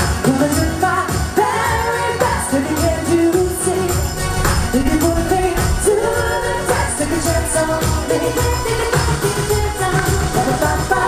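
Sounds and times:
amplified pop backing music: 0.0s - 11.0s
female vocal group singing: 0.3s - 11.0s
steady bass: 3.4s - 11.0s.

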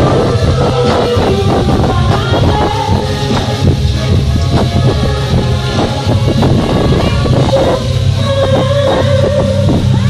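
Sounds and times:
dance music with heavy bass: 0.0s - 10.0s.

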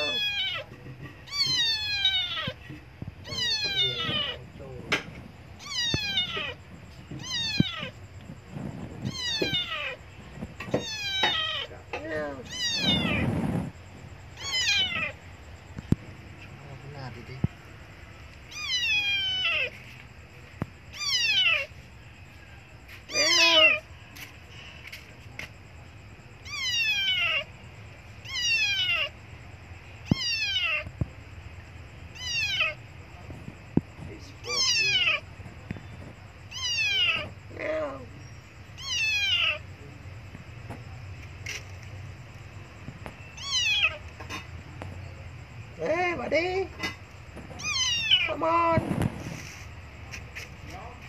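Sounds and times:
kitten meowing loudly: 0.0s - 2.6s, 3.2s - 4.4s, 5.6s - 6.6s, 7.2s - 8.0s, 9.1s - 10.0s, 12.3s - 13.3s, 14.4s - 15.2s, 18.5s - 19.8s, 20.9s - 21.7s, 23.1s - 23.8s, 26.4s - 27.5s, 28.2s - 29.1s, 30.0s - 30.9s, 32.1s - 32.8s, 34.4s - 35.2s, 36.5s - 37.3s, 38.8s - 39.6s, 43.4s - 44.0s, 47.6s - 48.4s.

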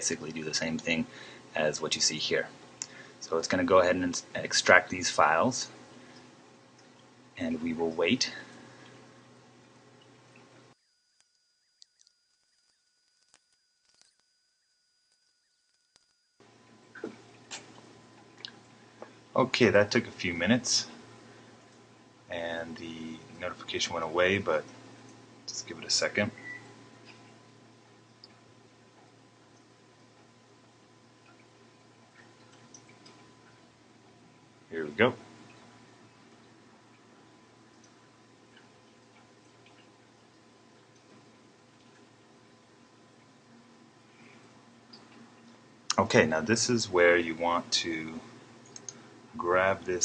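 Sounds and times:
faint room hiss and hum: 0.0s - 50.0s
faint clicks: 2.8s - 3.0s, 48.6s - 49.0s
tiny ticks: 48.6s - 49.0s.

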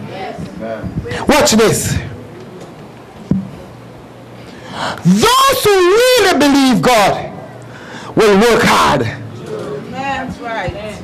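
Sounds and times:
microphone knock: 3.3s - 3.6s
woman's sharp in-breath: 7.7s - 8.2s
woman speaking: 9.9s - 11.0s.

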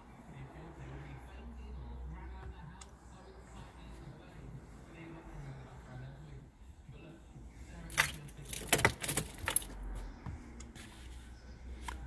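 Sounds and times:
car keys jangling: 7.9s - 9.8s.

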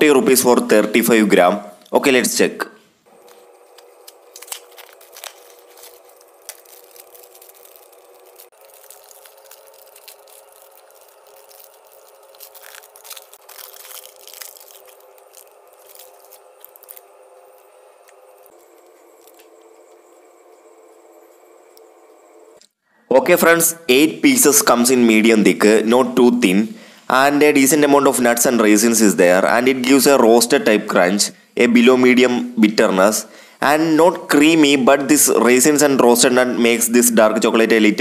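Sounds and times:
faint steady hum: 2.8s - 28.6s
wrapper crinkling and tearing: 3.1s - 20.2s.

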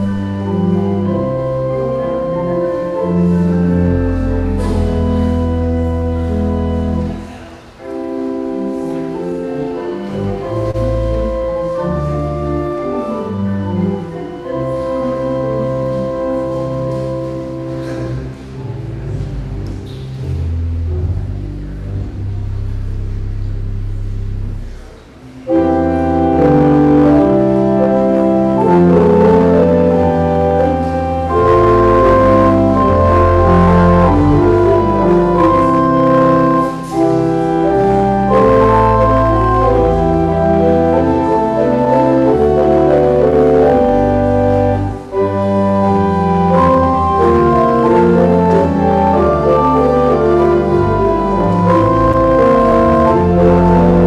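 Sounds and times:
church organ sustained chords: 0.0s - 54.0s.

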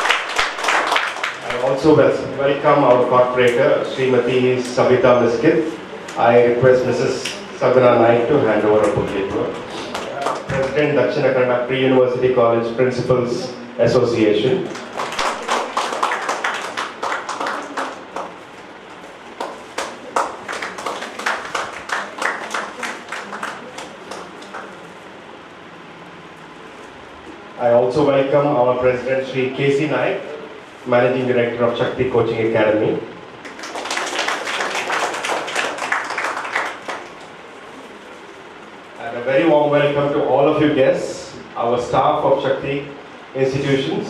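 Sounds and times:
audience applauding: 0.0s - 1.8s, 14.7s - 18.4s, 19.4s - 24.9s, 33.4s - 37.5s
small group clapping: 0.0s - 1.8s, 9.8s - 10.8s, 14.6s - 18.6s, 19.3s - 25.0s, 33.4s - 37.9s.

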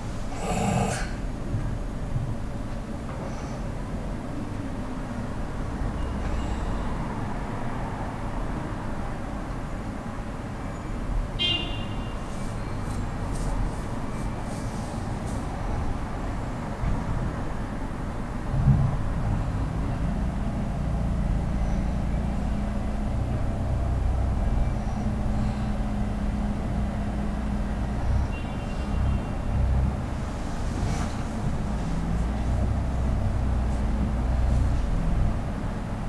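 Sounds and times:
vehicle traffic rumble: 0.0s - 36.0s.

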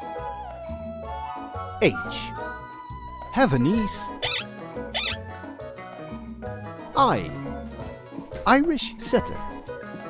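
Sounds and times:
cheerful children's music: 0.0s - 10.0s
rising squeaky cartoon effects: 4.2s - 5.2s.

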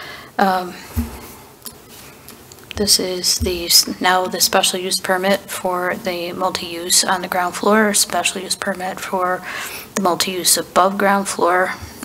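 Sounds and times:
woman speaking: 0.4s - 1.2s, 2.7s - 12.0s
soft low thump: 0.9s - 1.4s.

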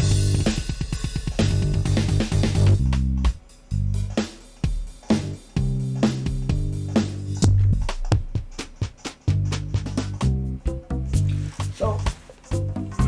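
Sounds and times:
drum and bass backing groove: 0.0s - 13.0s.

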